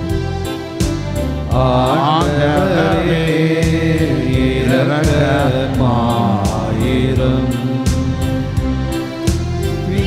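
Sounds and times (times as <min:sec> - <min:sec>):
low instrumental accompaniment: 0:00.0 - 0:10.0
singing a hymn: 0:01.4 - 0:08.6, 0:09.8 - 0:10.0.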